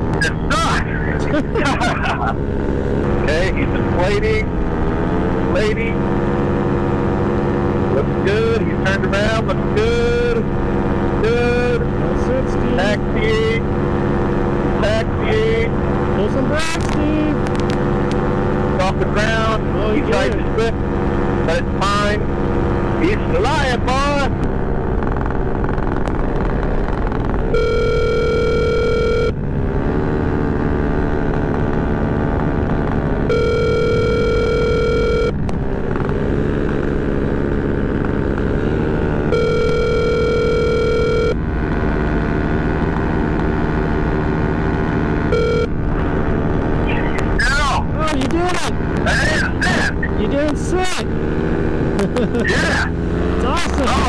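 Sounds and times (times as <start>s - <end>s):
paramotor engine drone: 0.0s - 54.0s
telephone ringback tone: 27.5s - 29.4s, 33.3s - 35.4s, 39.3s - 41.4s, 45.4s - 45.7s.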